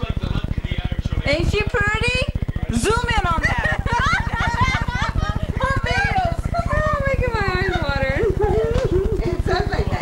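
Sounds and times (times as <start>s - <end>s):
steady low buzz: 0.0s - 10.0s.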